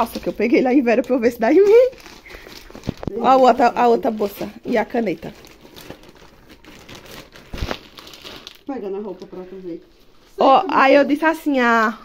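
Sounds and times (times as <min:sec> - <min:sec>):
plastic bags crinkling: 0:00.0 - 0:09.7.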